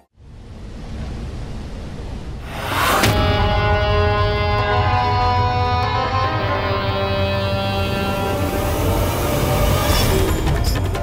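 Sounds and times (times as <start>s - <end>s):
rumbling hissing whoosh: 0.4s - 3.4s
background score: 2.4s - 11.0s.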